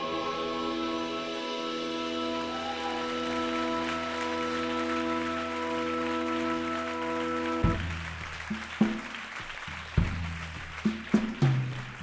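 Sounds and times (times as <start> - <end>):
live band sustained chord: 0.0 - 8.1.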